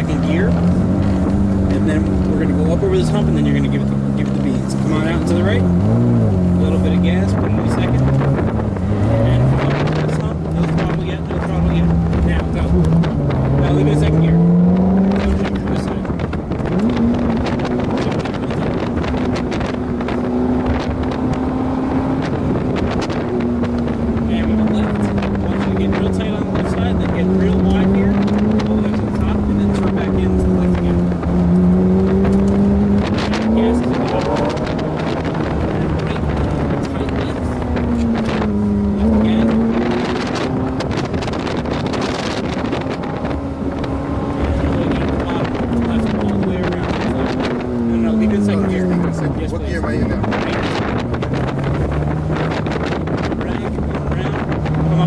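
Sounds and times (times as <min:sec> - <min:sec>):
car engine driving: 0:00.0 - 0:55.0
wind rush: 0:00.0 - 0:55.0.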